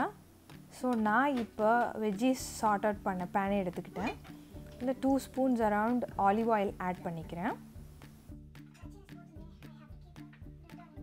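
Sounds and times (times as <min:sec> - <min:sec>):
woman speaking: 0:00.0 - 0:07.6
background music: 0:00.0 - 0:11.0.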